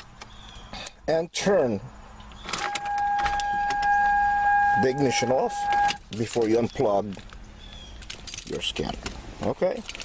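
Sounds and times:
electronic warning tone: 2.5s - 6.0s.

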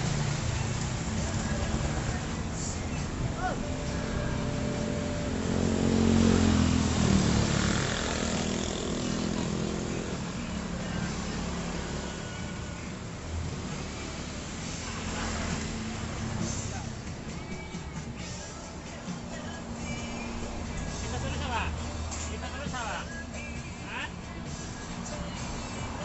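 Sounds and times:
small motorcycles passing: 0.0s - 17.4s.

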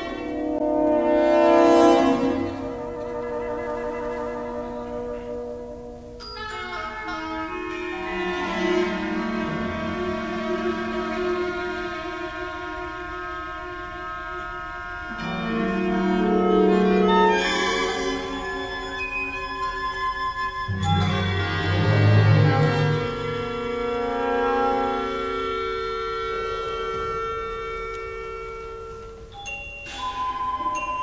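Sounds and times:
orchestra sustained chord: 0.0s - 19.3s, 20.7s - 29.4s.

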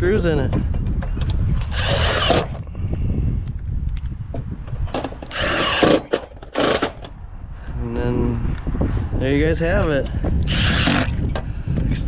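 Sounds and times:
impact driver driving screws: 1.2s - 2.6s, 5.0s - 7.1s, 10.4s - 11.4s.

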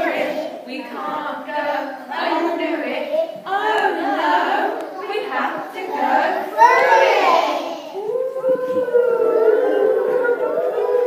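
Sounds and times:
children howling together: 6.0s - 11.0s.

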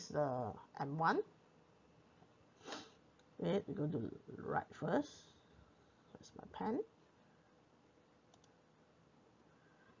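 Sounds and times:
faint quick clicks: 8.3s - 8.6s.

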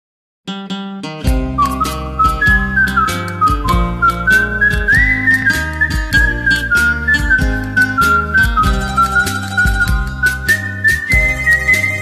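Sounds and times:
karaoke backing track: 1.2s - 12.0s
person whistling a melody: 1.4s - 12.0s.

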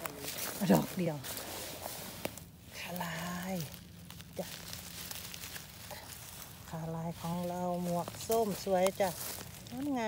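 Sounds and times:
dry leaves and twigs rustling: 0.0s - 10.0s.

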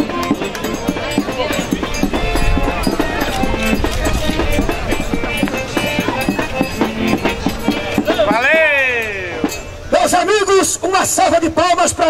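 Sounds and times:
quick drumbeat: 0.0s - 9.7s
strummed guitar: 0.0s - 10.2s
live folk band: 0.0s - 10.6s.

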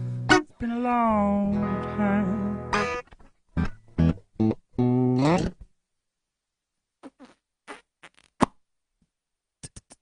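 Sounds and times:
beatbox mouth sounds: 5.1s - 5.6s, 7.0s - 8.6s, 9.6s - 10.0s.

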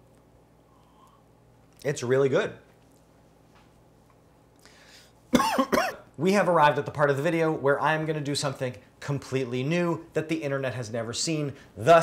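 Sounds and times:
man coughing: 5.3s - 6.1s.

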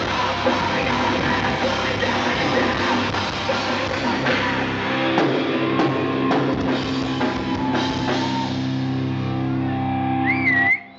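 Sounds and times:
electric guitar: 0.0s - 10.9s.

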